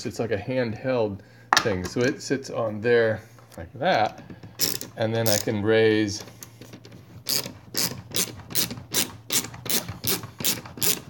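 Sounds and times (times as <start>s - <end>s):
socket wrench ratcheting: 4.6s - 5.6s, 7.3s - 11.0s.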